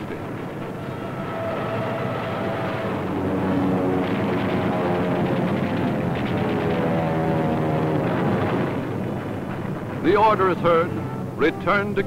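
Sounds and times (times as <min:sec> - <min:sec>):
aircraft engine drone: 0:00.0 - 0:12.0
orchestral music: 0:00.6 - 0:03.7, 0:10.1 - 0:12.0.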